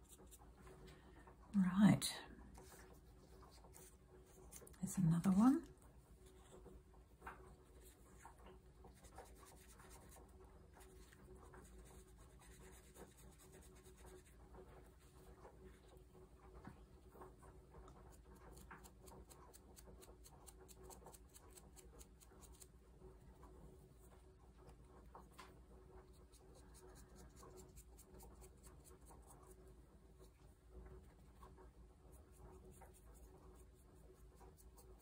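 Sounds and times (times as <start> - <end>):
brush scratching on paper: 0.0 - 0.5, 2.5 - 5.3, 7.6 - 15.8, 26.0 - 29.6, 31.1 - 35.0.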